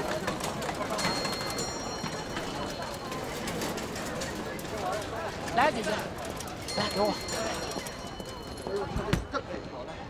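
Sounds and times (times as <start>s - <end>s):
crowd voices talking: 0.0s - 10.0s.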